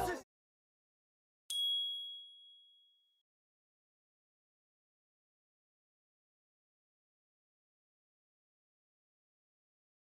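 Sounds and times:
high chime ding: 0:01.5 - 0:03.0.

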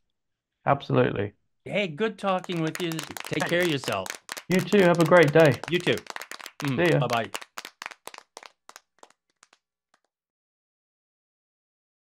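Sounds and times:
hand claps: 0:02.3 - 0:10.1.

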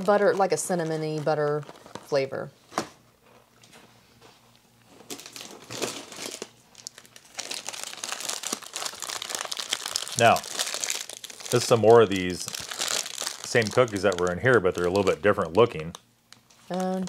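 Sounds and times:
plastic bag crinkling: 0:00.0 - 0:02.4, 0:05.0 - 0:17.0.

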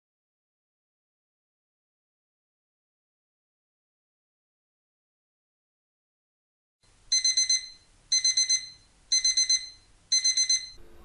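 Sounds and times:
rapid high-pitched alarm beeps: 0:07.1 - 0:10.8.

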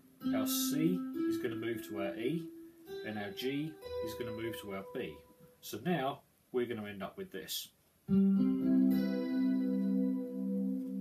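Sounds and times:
electric guitar chord: 0:08.1 - 0:11.0.

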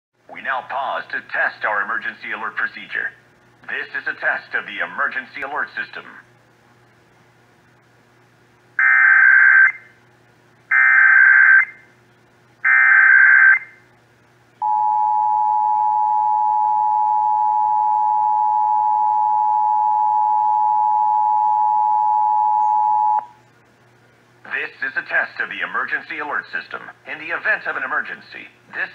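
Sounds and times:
two-tone attention signal: 0:14.6 - 0:23.3.

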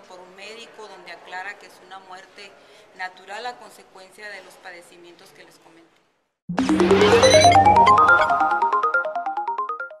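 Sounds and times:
news logo jingle: 0:06.5 - 0:09.7.

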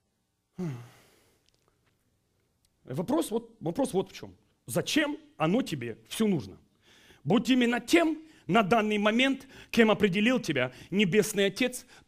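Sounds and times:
man sighing: 0:00.5 - 0:01.4.

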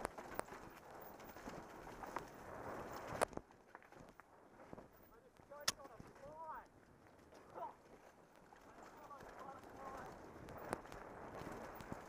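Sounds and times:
bike knocking and rattling: 0:00.0 - 0:12.0
tyres crunching on dirt: 0:00.0 - 0:12.0.

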